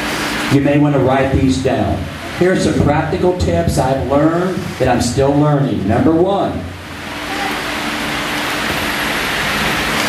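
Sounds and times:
loud steady rushing hiss: 0.0 - 10.0.

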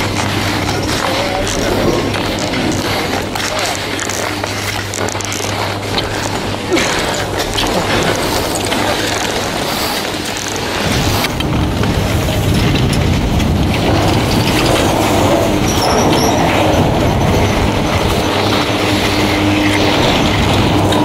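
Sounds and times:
chairlift rumble and clatter: 0.0 - 21.0.

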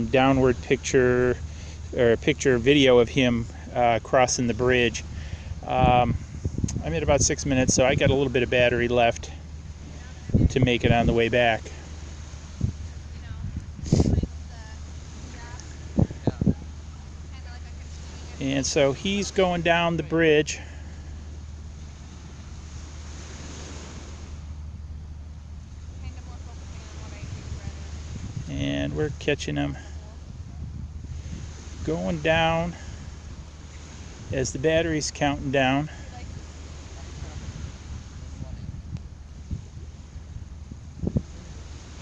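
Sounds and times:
wind on microphone: 0.0 - 42.0.

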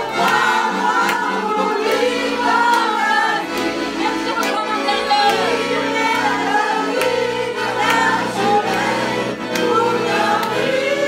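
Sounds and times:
hand-clapping on the beat: 0.0 - 11.0
women singing together: 0.0 - 11.0.

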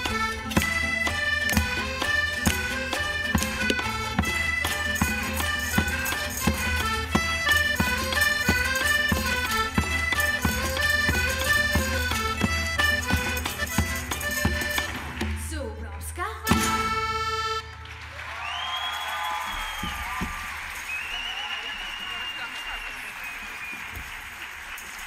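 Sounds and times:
string ensemble folk instrumental: 0.0 - 18.2
audience applause and cheering: 17.6 - 25.0.

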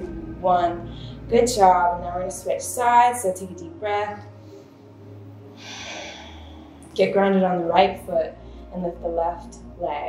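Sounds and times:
deep breath: 5.5 - 6.8.

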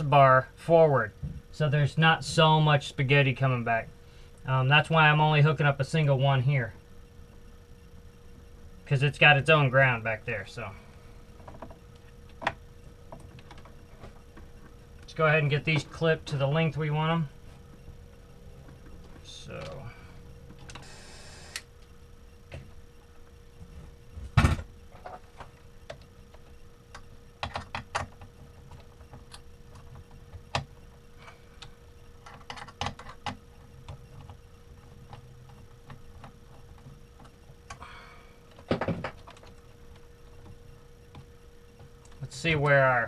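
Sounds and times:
faint steady hum: 0.0 - 43.0.

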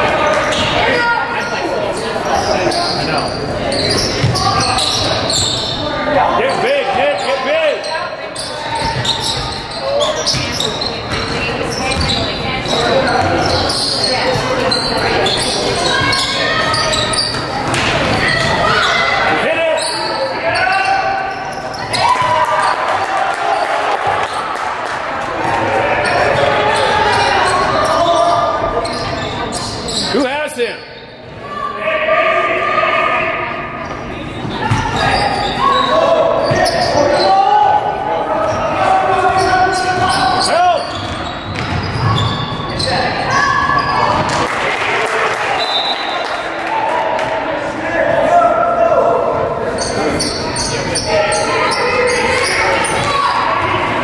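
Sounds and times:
shouting and chatter: 0.0 - 54.0.

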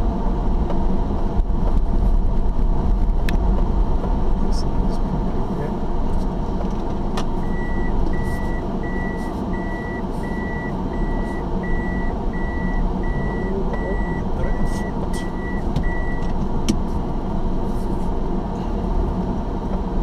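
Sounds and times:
low engine noise: 0.0 - 20.0
reversing warning beeps: 7.4 - 16.3.

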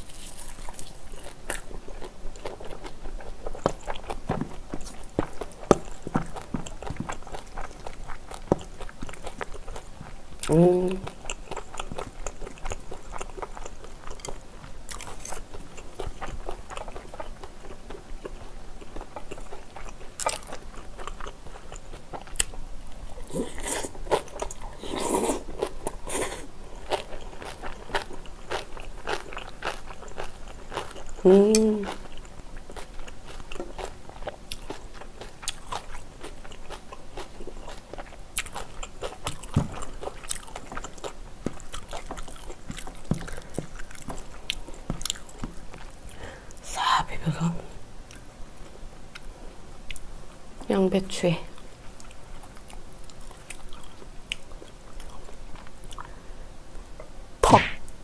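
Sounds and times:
person chewing food: 0.0 - 46.6, 51.6 - 56.3
person humming: 10.4 - 11.1, 31.2 - 31.9.

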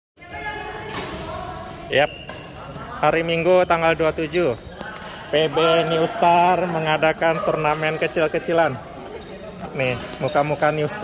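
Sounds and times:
echoing background voices: 0.2 - 11.0.

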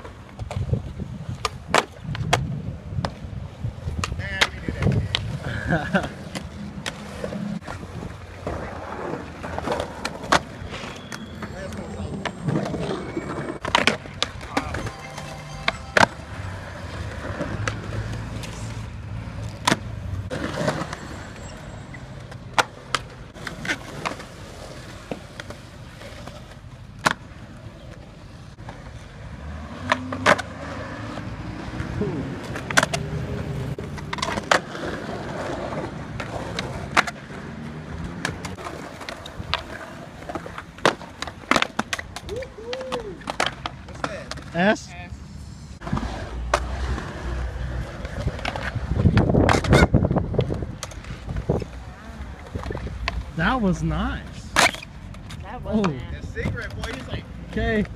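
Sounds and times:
skateboard wheels rolling on concrete: 0.0 - 57.9
skateboard cracks: 33.8 - 44.5.

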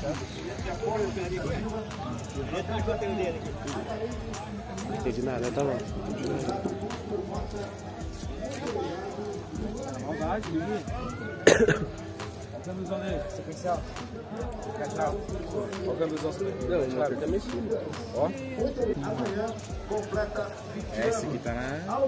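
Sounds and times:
background music: 0.0 - 22.0
people chatting: 0.0 - 22.0.

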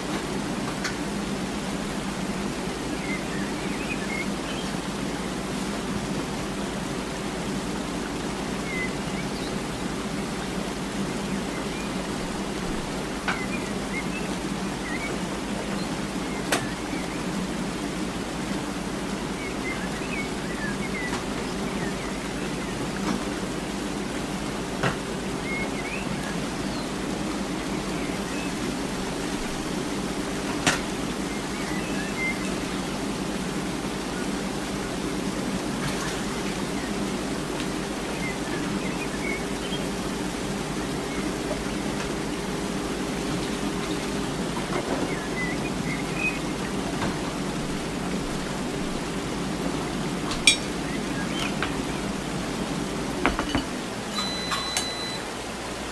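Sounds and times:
steady hiss: 0.0 - 55.9.

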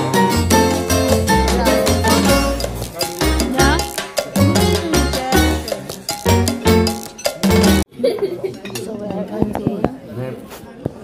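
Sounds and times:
murmur of voices: 0.0 - 11.0
cutlery clinking on plates: 5.7 - 7.8, 8.5 - 9.0.

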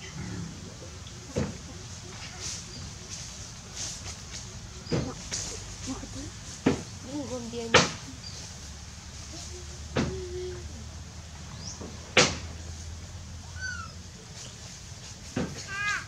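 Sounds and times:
young animal squeaky calls: 13.5 - 14.1.

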